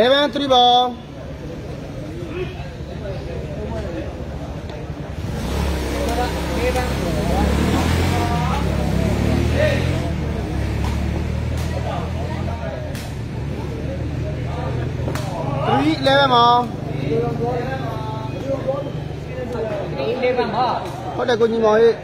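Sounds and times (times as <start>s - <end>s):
spectators chattering and calling: 0.0s - 22.0s.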